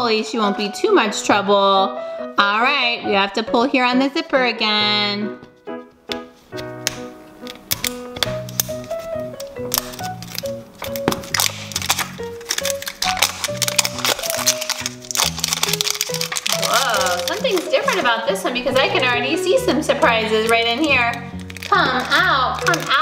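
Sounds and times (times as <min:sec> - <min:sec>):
plastic wrapping rustling: 0:06.3 - 0:23.0.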